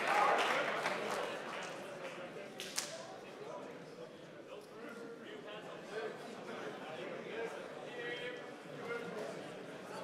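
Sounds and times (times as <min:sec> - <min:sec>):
murmur of audience: 0:00.0 - 0:10.0.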